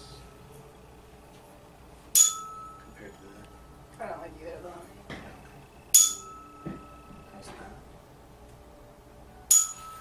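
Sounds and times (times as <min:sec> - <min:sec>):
tuning fork ringing: 0:02.1 - 0:07.8, 0:09.3 - 0:10.0.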